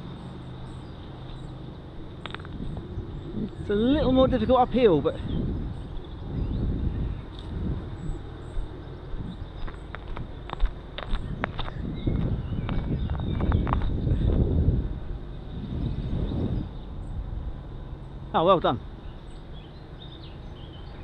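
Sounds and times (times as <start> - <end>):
wind buffeting microphone: 0.8 - 21.0.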